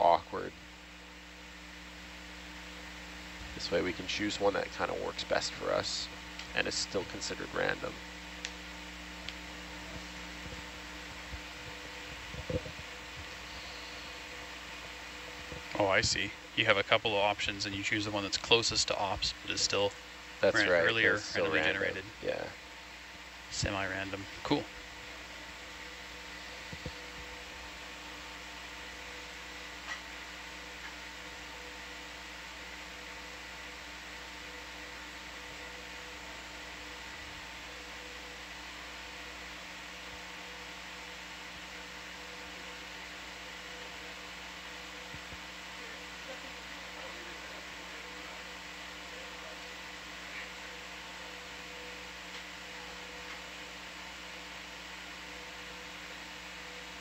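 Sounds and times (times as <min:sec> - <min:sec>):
electrical hum: 0:00.0 - 0:57.0
fan-like hiss: 0:00.0 - 0:57.0.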